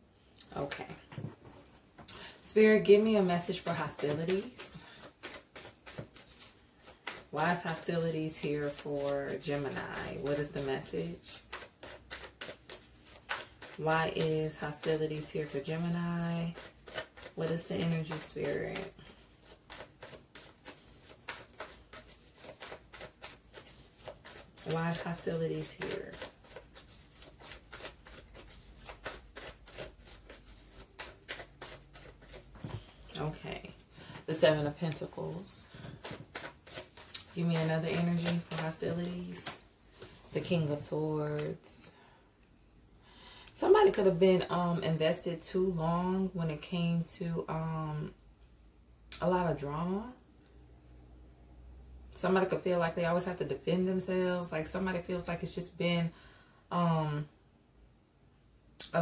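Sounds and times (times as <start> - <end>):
cards being shuffled: 3.4 - 40.4.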